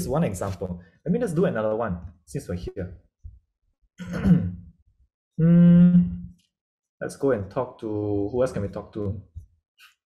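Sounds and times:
man sighing: 5.4s - 6.3s.

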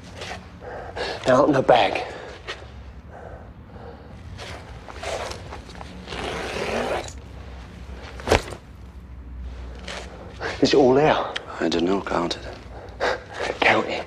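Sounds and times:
bag rustling and scraping: 4.3s - 10.2s
rasping scrape: 4.4s - 7.2s.

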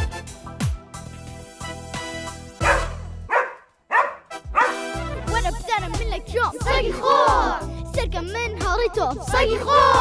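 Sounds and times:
dog barking: 2.6s - 4.9s
upbeat children's song: 4.9s - 10.0s.

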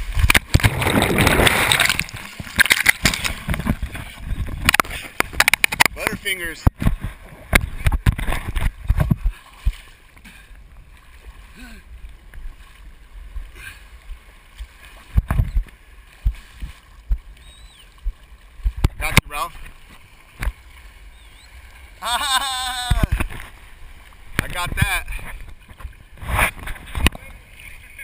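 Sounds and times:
waves thumping on camera housing: 0.0s - 9.9s, 14.6s - 20.7s, 22.7s - 27.4s
sea water sloshing and splashing: 0.0s - 28.0s.

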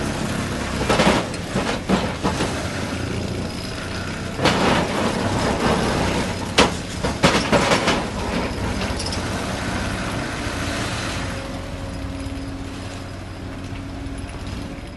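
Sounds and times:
excavator machine drone: 0.0s - 14.9s.

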